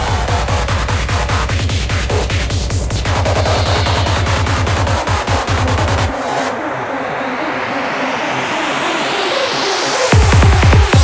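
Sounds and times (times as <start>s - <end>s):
rising noise sweep: 2.8s - 9.0s
repeating synth line: 3.0s - 6.1s.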